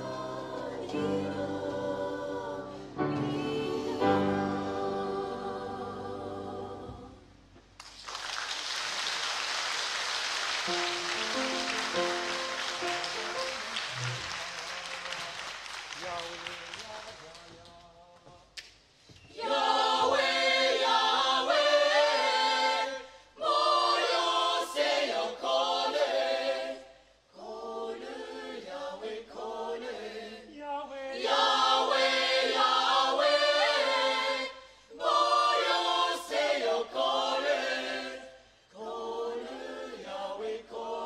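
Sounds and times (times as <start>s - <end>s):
mixed choir singing a cappella: 0.0s - 7.4s, 19.3s - 41.0s.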